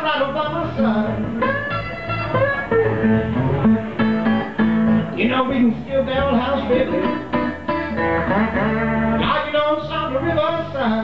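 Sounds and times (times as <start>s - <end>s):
electric guitar blues: 0.0s - 11.0s
resonator guitar: 0.0s - 11.0s
low bass figure: 0.5s - 9.4s.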